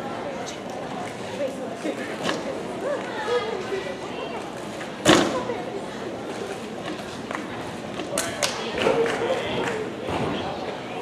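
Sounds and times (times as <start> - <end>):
people talking in a large hall: 0.0 - 11.0.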